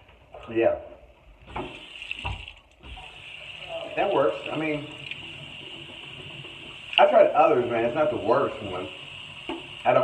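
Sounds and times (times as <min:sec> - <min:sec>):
tap water running into sink: 0:01.5 - 0:10.0.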